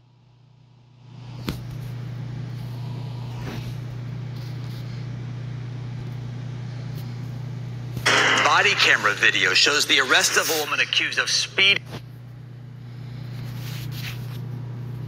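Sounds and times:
steady low hum with hiss: 0.0 - 15.0.

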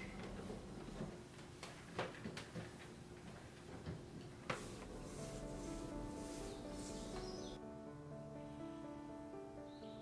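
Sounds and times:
cloth wiping plastic: 4.5 - 7.6.

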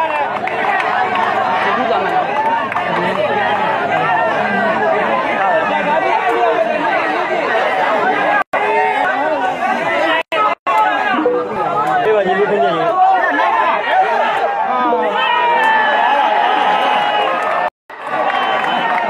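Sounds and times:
crowd chattering: 0.0 - 19.0.

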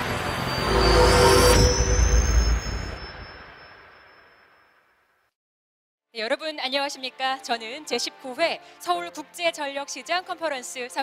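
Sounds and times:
rising high whine: 0.0 - 4.4.

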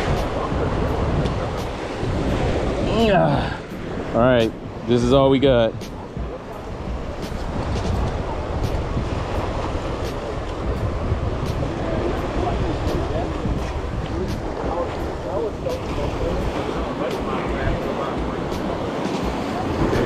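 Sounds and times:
faint voices: 0.0 - 8.6, 10.0 - 20.0
surf washing against rocks: 0.0 - 20.0
wind rumbling on microphone: 0.0 - 20.0.

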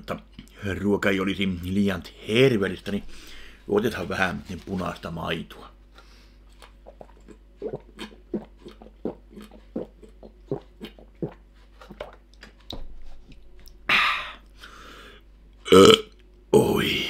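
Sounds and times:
man gulping milk: 6.6 - 14.4.

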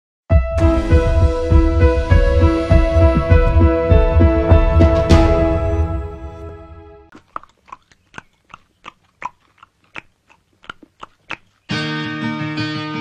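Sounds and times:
music: 0.3 - 7.1, 11.7 - 13.0
person crunching chips: 7.1 - 11.7
strummed guitar tune: 11.7 - 13.0.

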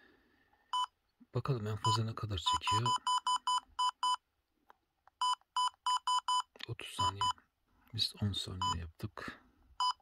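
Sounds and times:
short electronic keypad beeps: 5.2 - 7.4, 9.8 - 10.0.

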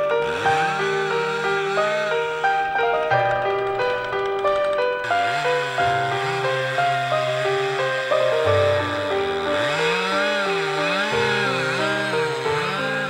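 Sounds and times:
background music with quick notes: 0.0 - 13.0
chainsaw cutting through trunk: 0.0 - 13.0.

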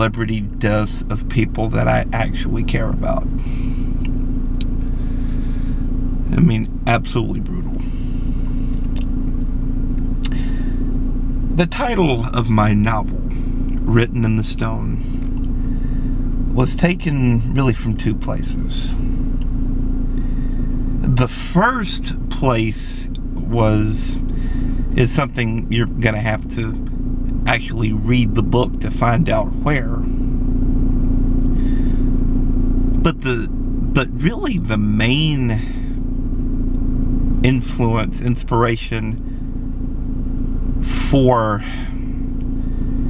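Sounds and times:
car engine low rumble: 0.0 - 43.0.

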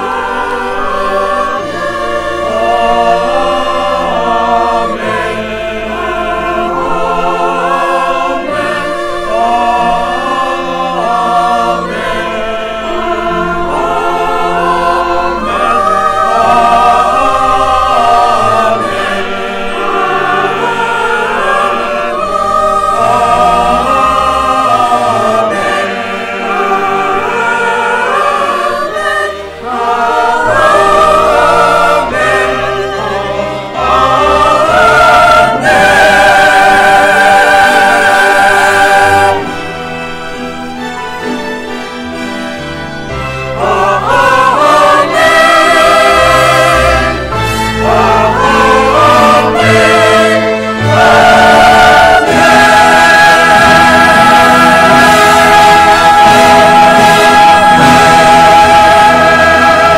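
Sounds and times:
mixed choir singing in harmony: 0.0 - 59.9.

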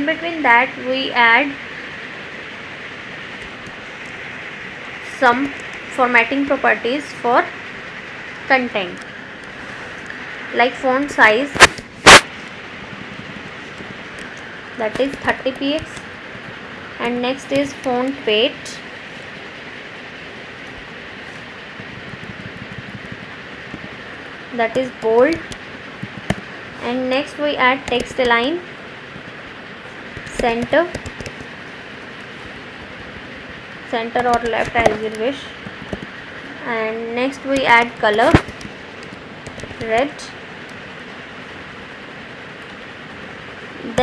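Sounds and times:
low room and microphone hiss: 0.0 - 44.0.

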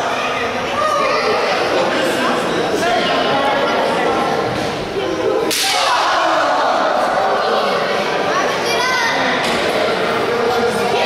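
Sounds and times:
crowd voices in a large hall: 0.0 - 11.0.

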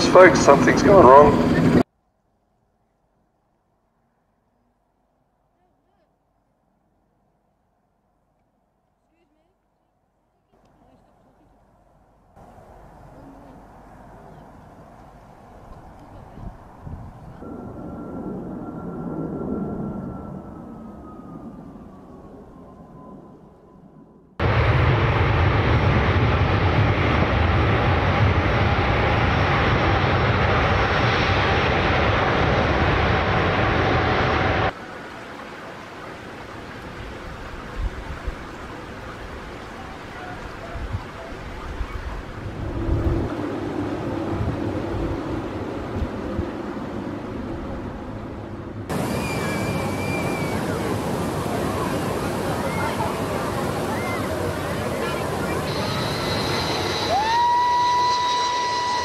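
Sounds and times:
distant jet noise: 0.0 - 1.9, 10.6 - 59.0
jet engine whine: 0.0 - 1.9, 12.4 - 40.7, 41.3 - 59.0
loud steady jet noise: 0.0 - 1.9, 24.4 - 59.0.

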